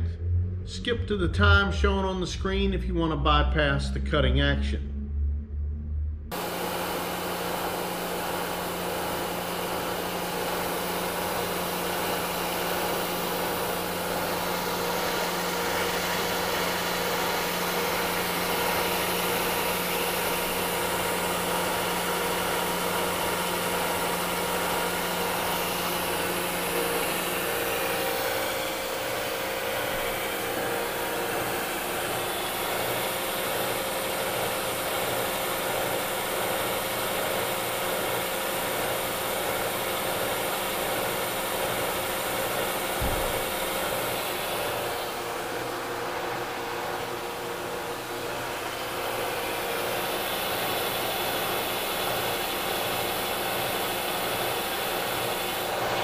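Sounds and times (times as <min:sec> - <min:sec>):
low hum: 0:00.0 - 0:06.8
milling machine cutting metal: 0:06.4 - 0:56.0.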